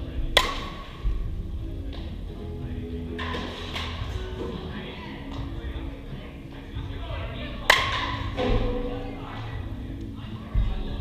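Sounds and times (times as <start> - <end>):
background music: 0.0 - 11.0
metal bat striking ball: 0.4 - 0.9, 7.7 - 8.9.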